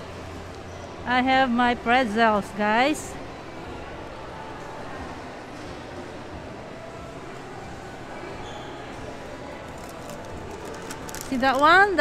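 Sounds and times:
busy shop background hum: 0.0s - 12.0s.

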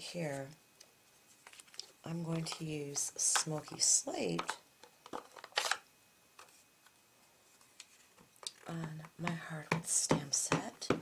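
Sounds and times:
plastic case handling noises: 1.3s - 5.8s.

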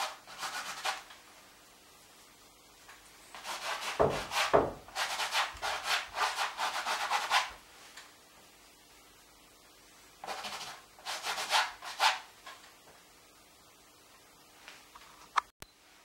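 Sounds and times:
paint scrubbing on canvas: 0.0s - 1.1s, 3.3s - 7.6s, 10.2s - 12.3s.

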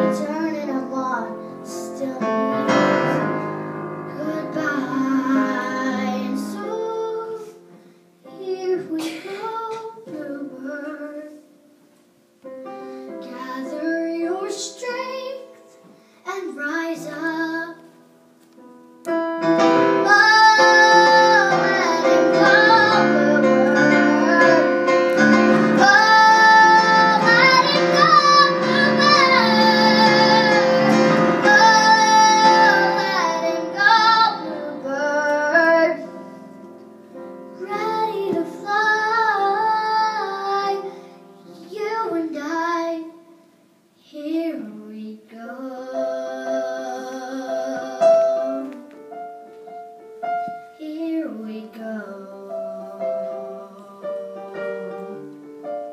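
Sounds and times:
girl singing a ballad: 0.0s - 11.9s, 12.5s - 49.2s, 50.4s - 55.3s
piano on electronic keyboard: 0.0s - 43.2s, 45.6s - 55.9s.

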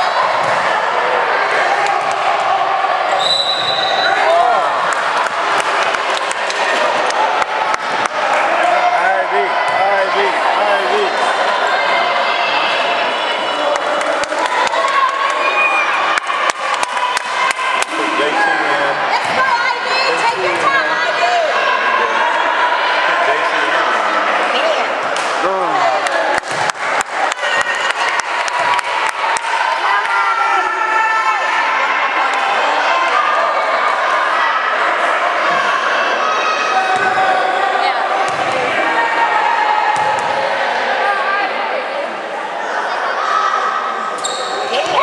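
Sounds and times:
crowd murmur in a gym: 0.0s - 45.0s.

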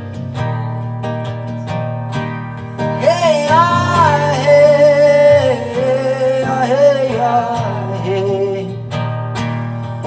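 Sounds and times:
acoustic guitar: 0.0s - 10.0s
woman singing wordless melody: 3.0s - 8.6s.

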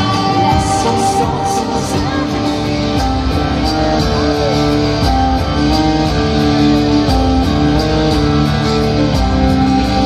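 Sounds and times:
percussion beat: 0.0s - 10.0s.

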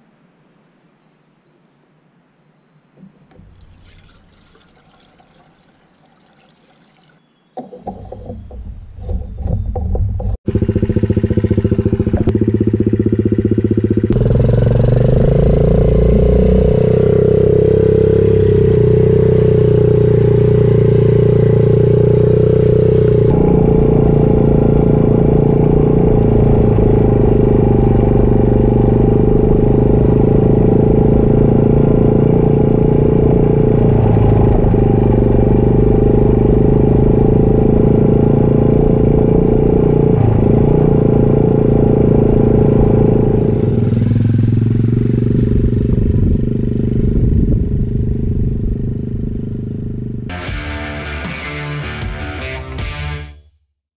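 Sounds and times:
small vehicle engine running: 7.8s - 50.4s.

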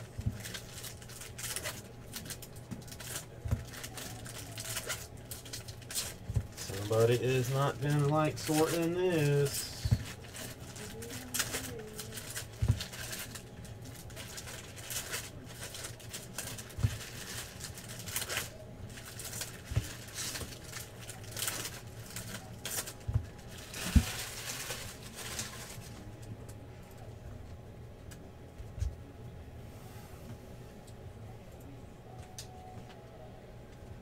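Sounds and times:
cards rustling: 0.0s - 26.1s
wrappers crinkling and tearing: 0.0s - 26.3s.

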